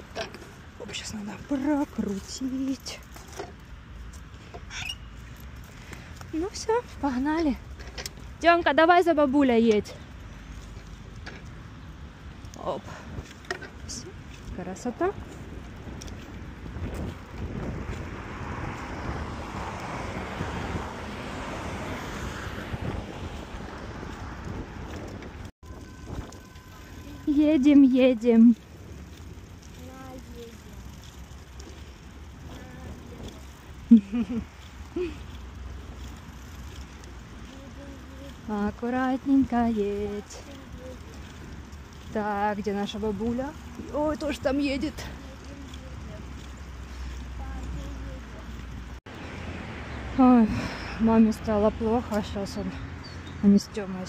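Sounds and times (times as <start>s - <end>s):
wind and riding rumble: 0.0s - 54.0s.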